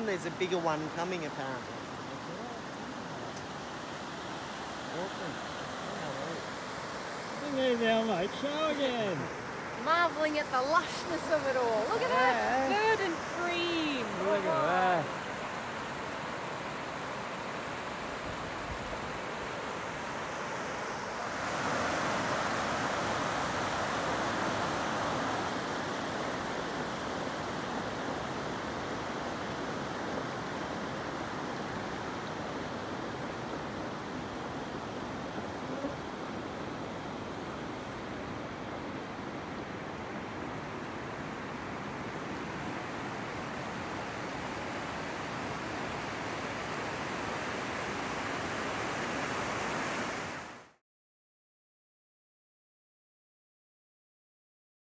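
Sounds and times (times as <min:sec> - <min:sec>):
floodwater rushing: 0:00.0 - 0:50.7.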